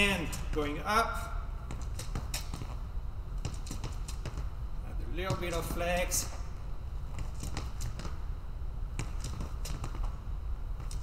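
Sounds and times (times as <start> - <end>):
low hum: 0.0 - 11.0
sneaker footsteps tapping on floor: 1.6 - 4.6, 7.1 - 8.3, 8.9 - 11.0.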